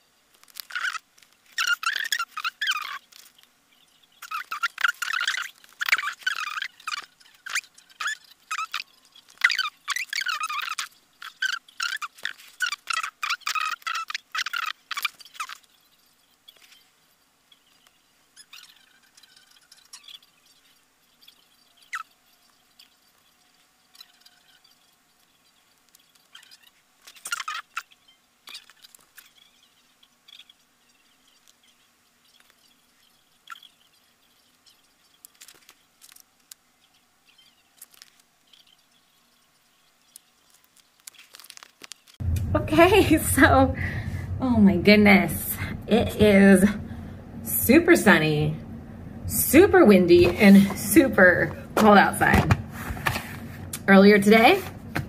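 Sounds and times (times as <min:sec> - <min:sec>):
faint ticks and rustles: 0:00.2 - 0:42.2
paper and fabric crinkling: 0:00.3 - 0:03.6, 0:34.7 - 0:36.6, 0:37.8 - 0:38.8, 0:40.0 - 0:42.2.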